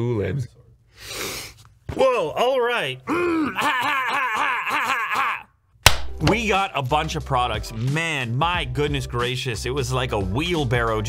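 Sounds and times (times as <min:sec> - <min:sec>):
man laughing hard: 0:03.1 - 0:05.5.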